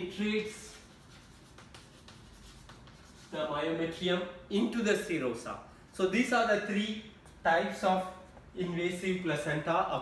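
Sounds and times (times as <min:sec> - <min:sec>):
chalk scratching on chalkboard: 0:00.1 - 0:03.5
chalk tapping on board: 0:00.2 - 0:03.4.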